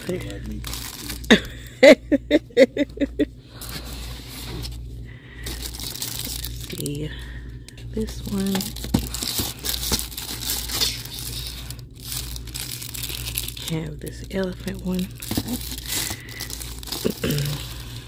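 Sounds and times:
plastic shrink-wrap crinkling: 0.0 - 1.6, 4.2 - 7.2, 8.0 - 18.0.

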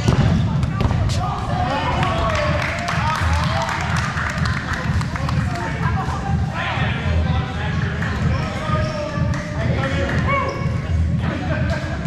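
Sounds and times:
balls bouncing on floor: 0.0 - 1.2
players calling and chattering: 0.0 - 12.0.

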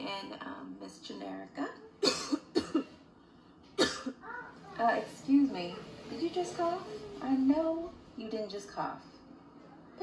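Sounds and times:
person coughing: 2.0 - 3.0, 3.8 - 4.2.

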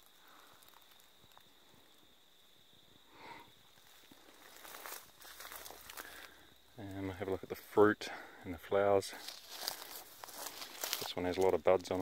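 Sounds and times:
faint footsteps in dry grass: 3.6 - 12.0
leaves rustling: 3.7 - 7.8, 9.0 - 12.0.

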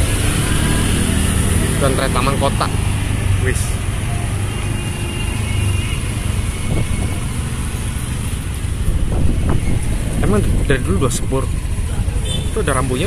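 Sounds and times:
road noise: 0.0 - 13.0.

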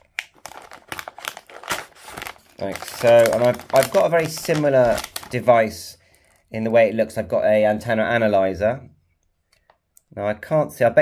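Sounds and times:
plastic bag crinkling: 0.0 - 6.5.

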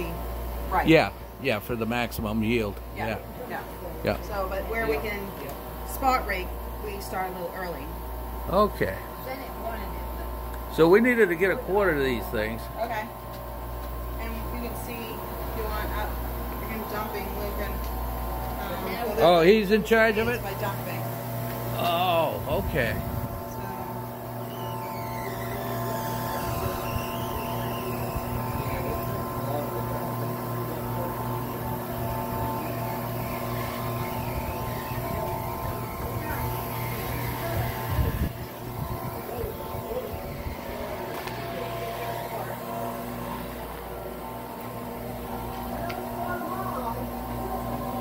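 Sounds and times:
motors and conveyor humming: 0.0 - 48.0.

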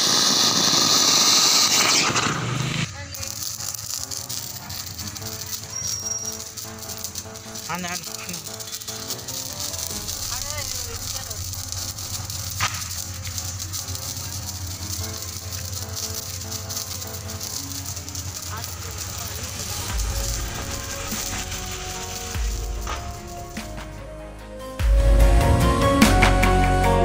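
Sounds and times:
sparklers fizzing and crackling: 0.0 - 24.2, 24.8 - 27.0
low rumbles: 9.5 - 27.0.

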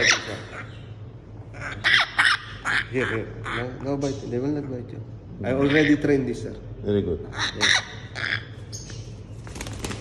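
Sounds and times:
parrot squawking: 0.0 - 4.3, 5.4 - 6.3, 7.2 - 8.9.

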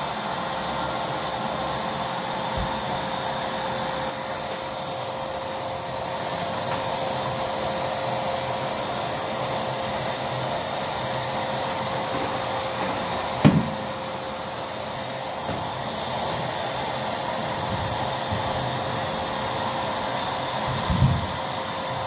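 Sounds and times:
vacuum cleaner whining on carpet: 0.0 - 22.0.

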